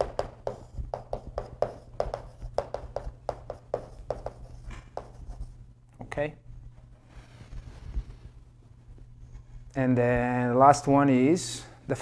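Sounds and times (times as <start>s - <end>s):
chalk scratching on blackboard: 0.0s - 5.5s
steady low hum: 0.0s - 12.0s.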